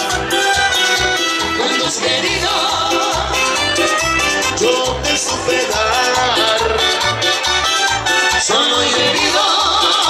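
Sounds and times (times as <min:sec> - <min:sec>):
live dance band playing: 0:00.0 - 0:10.0.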